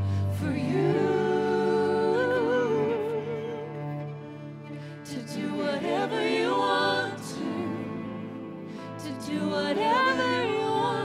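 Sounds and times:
woman singing long vibrato note: 0:00.0 - 0:04.0, 0:05.0 - 0:11.0.

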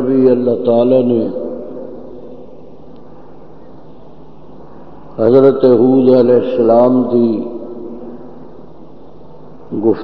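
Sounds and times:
preacher's voice echo: 0:00.0 - 0:02.4, 0:05.2 - 0:08.2
low recording background noise: 0:00.0 - 0:10.0.

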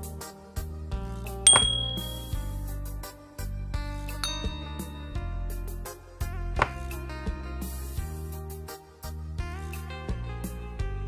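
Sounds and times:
background music: 0:00.0 - 0:11.0
game piece click with chime: 0:01.5 - 0:02.4, 0:04.2 - 0:05.2.

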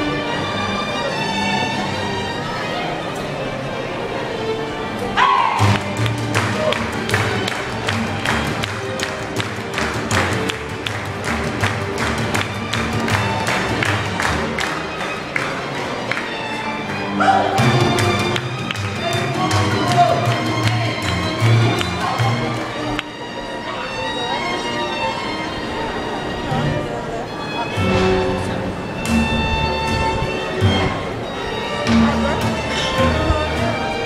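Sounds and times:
violin playing fast: 0:04.2 - 0:34.0
low bass line: 0:27.8 - 0:31.2, 0:31.8 - 0:34.0.

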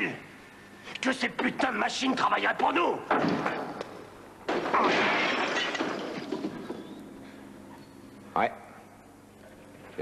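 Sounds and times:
crash with shattering glass: 0:04.5 - 0:06.6.

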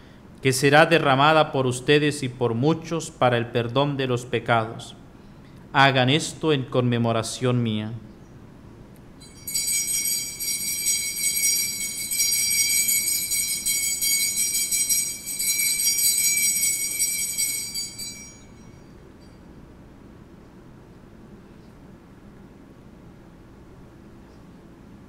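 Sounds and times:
altar bells jingling: 0:09.2 - 0:19.5.

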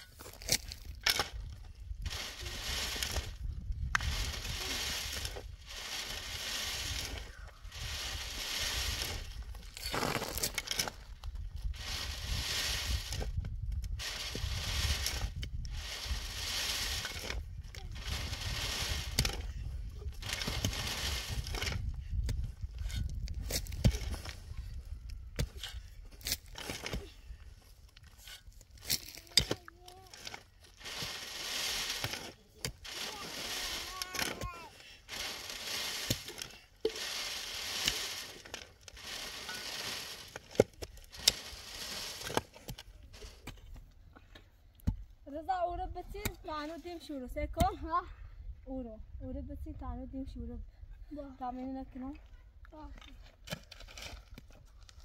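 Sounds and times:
shovel clicking against stones: 0:00.0 - 0:19.5, 0:20.1 - 0:24.4, 0:25.4 - 0:27.1, 0:28.0 - 0:43.6
soil rattling through wire sieve: 0:00.4 - 0:22.0, 0:28.1 - 0:43.4
wind rumbling on microphone: 0:00.8 - 0:09.8, 0:11.0 - 0:26.2.

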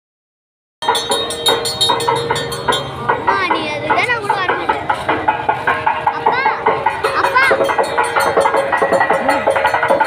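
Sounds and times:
rhythmic percussion strokes: 0:00.8 - 0:10.0.

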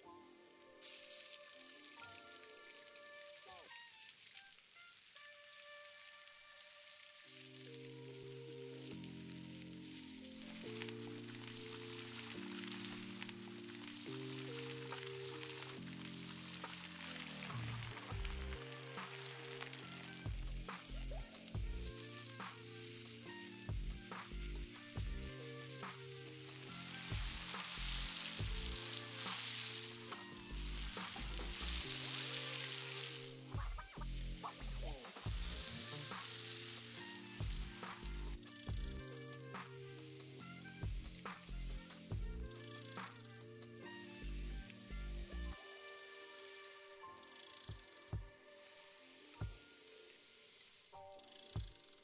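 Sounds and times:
oil sizzling in a pan: 0:00.2 - 0:52.0.

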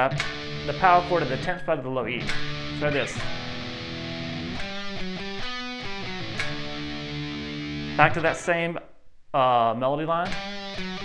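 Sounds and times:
electric guitar power chord: 0:00.0 - 0:01.6, 0:02.2 - 0:08.4, 0:10.3 - 0:11.0.

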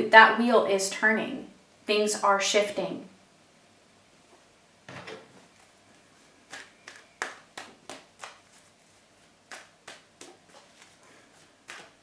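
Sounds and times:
cards slapping on wooden table: 0:06.5 - 0:08.4, 0:11.7 - 0:12.0.

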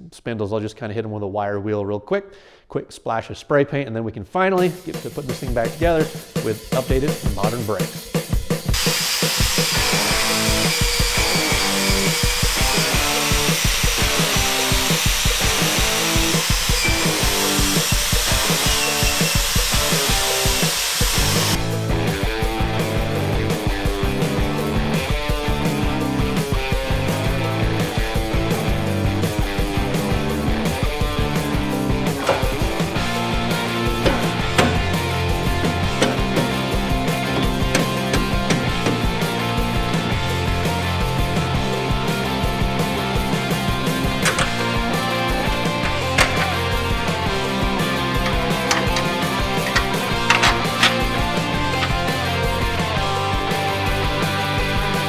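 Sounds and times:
rock background music: 0:04.6 - 0:55.0
wire wheel scrubbing rust: 0:32.1 - 0:39.4, 0:43.8 - 0:52.9.

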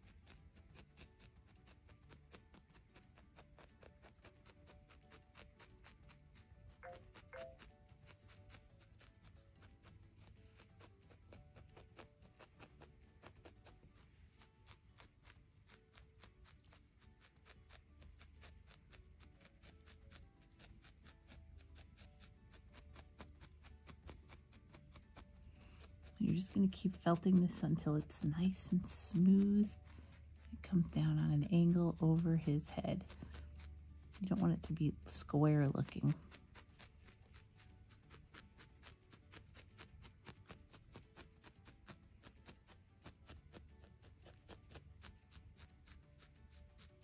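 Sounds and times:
faint background music: 0:00.0 - 0:47.0
felting needle ticking into wool: 0:00.0 - 0:47.0.

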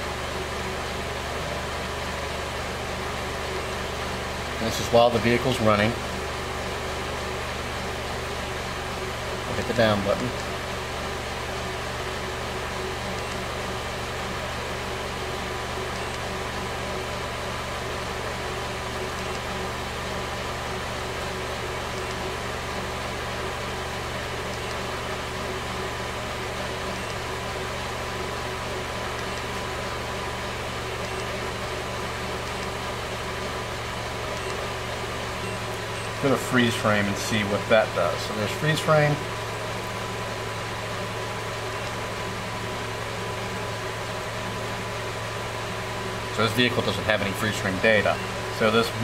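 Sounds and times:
car engine idling: 0:00.0 - 0:49.0
faint steady whine: 0:00.0 - 0:49.0.

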